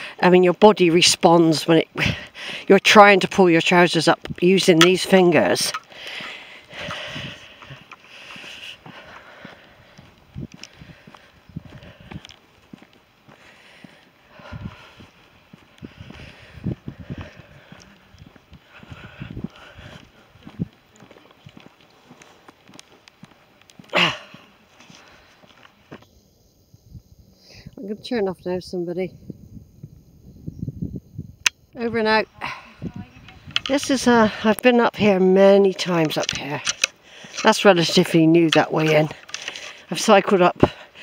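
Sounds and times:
footsteps on tarmac: 1.9s - 26.1s, 33.0s - 41.0s
light rustling: 35.8s - 41.0s.

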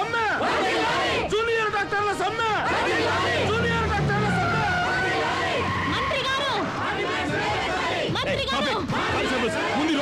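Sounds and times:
voices shouting: 0.0s - 10.0s
jeep engine running: 2.3s - 6.8s.

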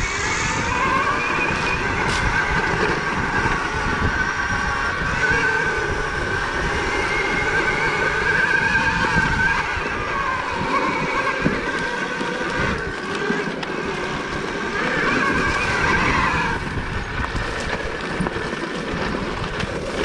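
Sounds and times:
bike rattling over dirt trail: 0.0s - 20.0s
electric motorbike whining: 0.0s - 20.0s.

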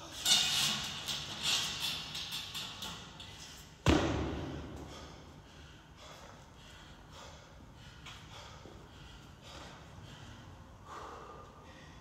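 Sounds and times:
person breathing hard: 4.3s - 12.0s.

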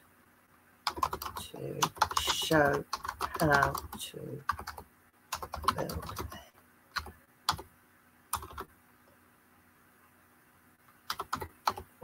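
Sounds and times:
keyboard typing: 0.9s - 7.7s, 8.3s - 8.7s, 11.0s - 11.9s.

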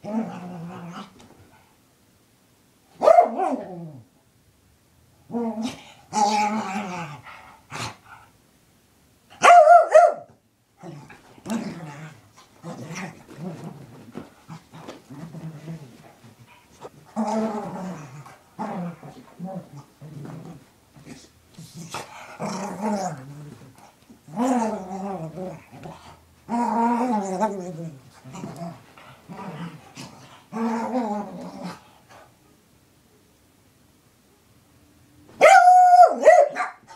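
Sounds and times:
dog growling and grunting: 0.0s - 1.2s, 5.3s - 8.0s, 10.8s - 16.1s, 16.7s - 31.9s
small dog barking: 3.0s - 3.6s, 9.4s - 10.3s, 35.4s - 36.9s.

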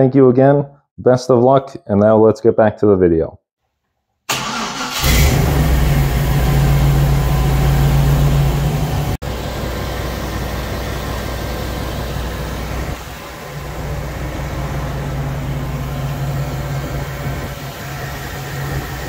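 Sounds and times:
car engine starting and idling: 4.3s - 19.0s.

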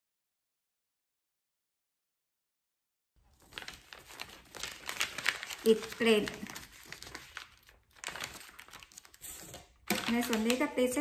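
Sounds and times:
paper rustling and crinkling: 3.2s - 11.0s.

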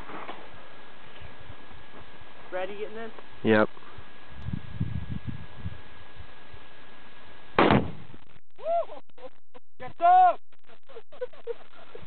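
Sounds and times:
loud explosion boom: 7.6s - 8.1s.

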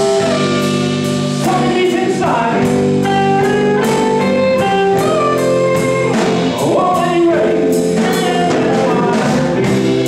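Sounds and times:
drums: 0.0s - 10.0s
electric guitar: 0.0s - 10.0s
man singing: 0.0s - 10.0s.

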